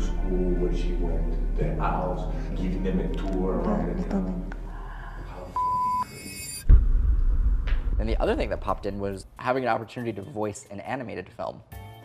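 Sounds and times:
censor bleep tone: 0:05.6 - 0:06.7
loud low thump: 0:06.6 - 0:09.1.

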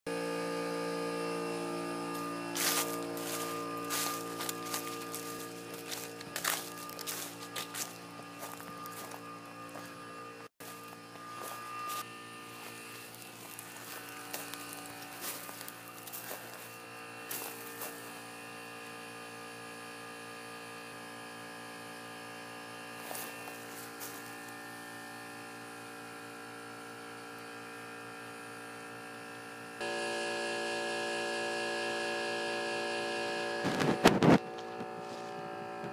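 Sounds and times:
air compressor buzzing hum: 0:00.1 - 0:35.9.

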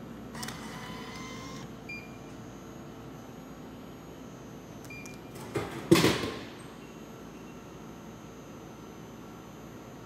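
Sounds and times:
low machine hum: 0:00.0 - 0:10.0
bill acceptor mechanical whir: 0:00.3 - 0:02.3.

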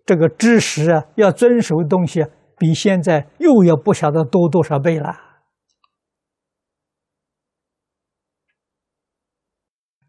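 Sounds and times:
man speaking: 0:00.0 - 0:05.3.

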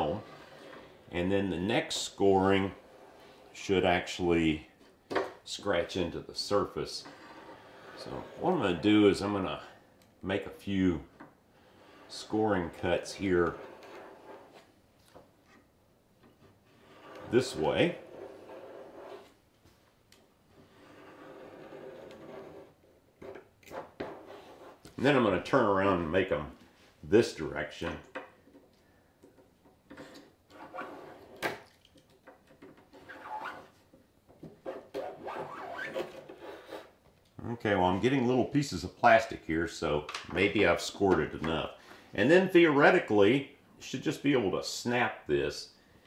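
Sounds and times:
scoring tool scraping plastic: 0:00.0 - 0:03.7, 0:06.8 - 0:08.9, 0:11.7 - 0:14.7, 0:16.2 - 0:19.4, 0:20.5 - 0:25.0, 0:29.3 - 0:31.7, 0:32.5 - 0:37.0.

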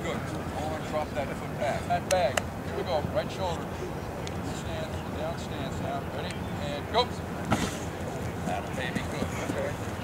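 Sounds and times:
faint voices: 0:02.6 - 0:10.0.

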